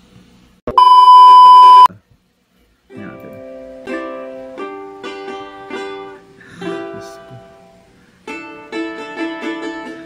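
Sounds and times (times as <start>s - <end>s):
test-pattern beep: 0.7s - 1.9s
ukulele playing chords: 2.9s - 10.0s.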